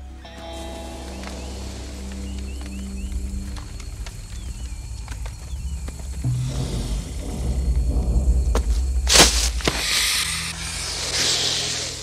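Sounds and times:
low drone: 0.0s - 12.0s
tense film score: 0.0s - 12.0s.

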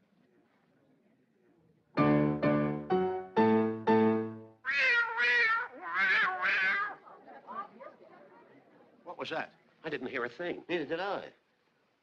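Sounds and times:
piano chords: 2.0s - 4.6s
cats meowing: 4.7s - 7.2s.

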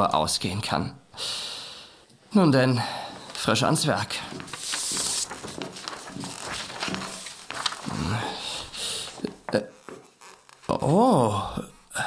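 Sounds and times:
rustling and clicking: 3.2s - 8.1s.

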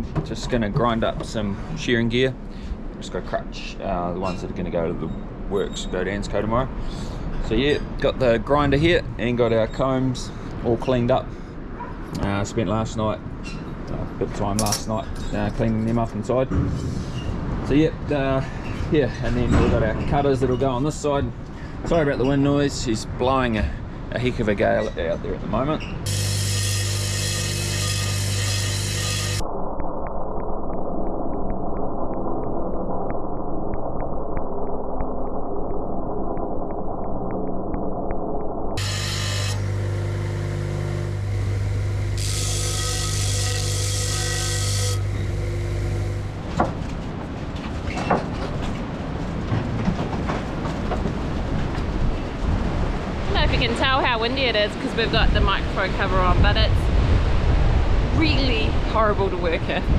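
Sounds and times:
steel grinding on spinning disc: 26.0s - 29.4s, 38.8s - 46.5s
electric motor humming: 26.1s - 29.4s, 38.8s - 46.5s
wind buffeting microphone: 46.3s - 59.9s.

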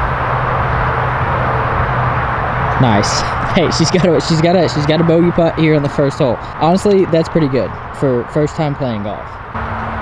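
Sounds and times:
constant low hum: 0.0s - 10.0s
rushing outdoor background noise: 0.0s - 10.0s
man's voice: 2.8s - 9.3s.

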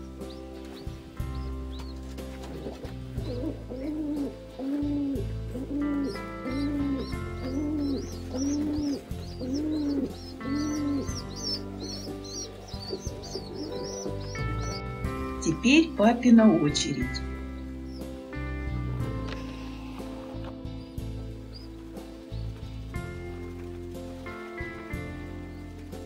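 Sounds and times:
pigeon cooing: 0.0s - 15.2s, 16.6s - 26.0s
soft background music: 0.0s - 26.0s
squabs squeaking: 0.2s - 15.6s.

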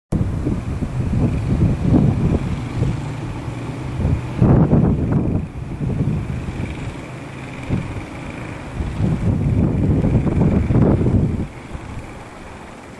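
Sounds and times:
wind buffeting microphone: 0.1s - 12.9s.

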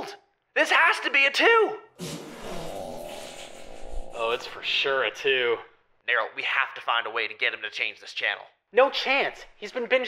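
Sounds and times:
fart sound effect: 2.0s - 3.6s.

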